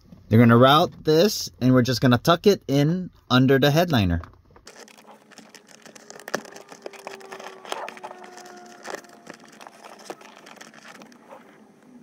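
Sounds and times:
small clicks and rubbing: 4.2 - 12.0
thin squeaky tones: 4.8 - 11.7.

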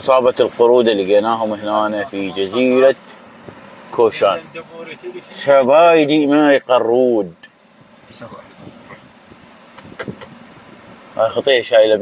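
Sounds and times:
faint low background rumble: 0.0 - 12.0
short sharp clicks: 9.8 - 10.4.

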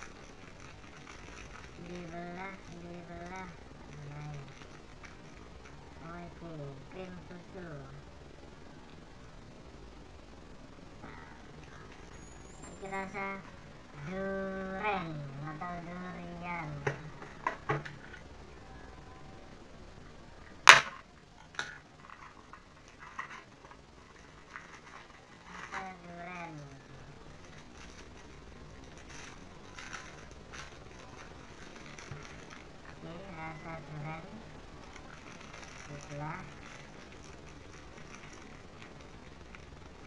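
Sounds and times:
packaging rustling: 0.0 - 6.0, 22.0 - 26.1, 27.2 - 33.5, 34.6 - 40.0
plastic wrapper crinkling: 0.0 - 6.2, 21.9 - 40.0
sharp knock on packaging: 20.7 - 21.0.

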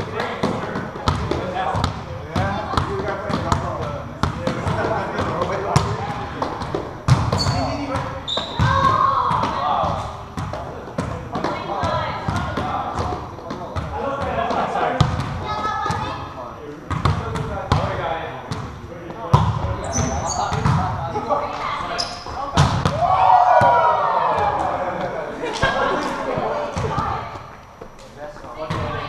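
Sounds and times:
players calling and shouting: 0.0 - 29.0
volleyball being hit: 0.2 - 15.4, 22.5 - 24.8.

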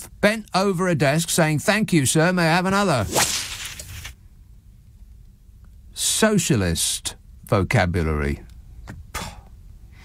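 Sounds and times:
short swishing burst: 2.7 - 4.2.

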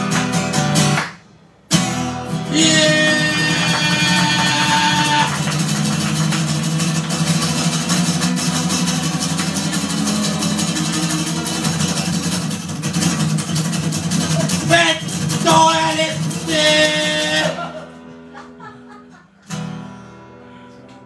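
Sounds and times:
acoustic guitar strummed hard: 0.0 - 18.4
man singing held note: 2.5 - 5.4.

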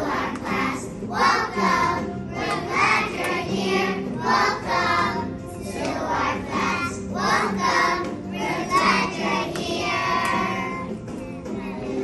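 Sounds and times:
young children singing together: 0.0 - 12.0.

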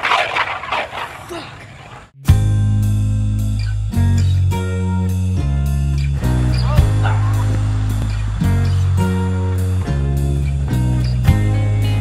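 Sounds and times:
rock music: 2.2 - 12.0.

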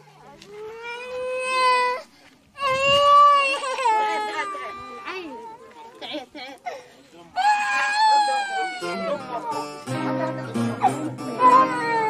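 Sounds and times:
small child crying: 0.6 - 5.3, 7.4 - 9.2, 11.4 - 12.0.

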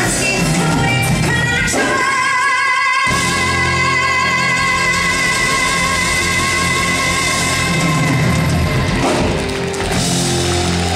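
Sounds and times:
pop band accompaniment: 0.0 - 10.9.

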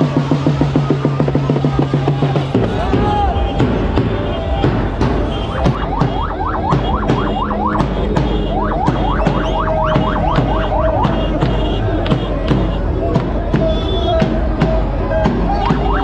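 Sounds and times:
bass drum beating: 0.0 - 16.0
metal pots beaten: 3.6 - 12.8
shrill siren-like tone: 8.5 - 11.2.

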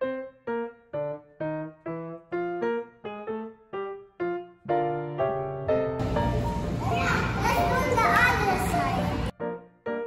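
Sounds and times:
children talking and playing: 6.6 - 9.3.

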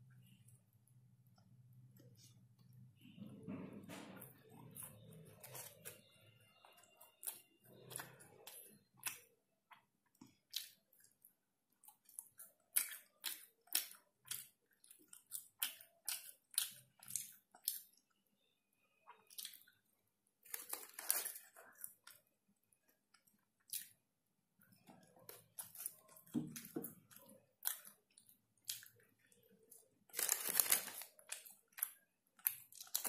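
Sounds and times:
chewing french fries: 4.2 - 18.2, 19.0 - 33.0.

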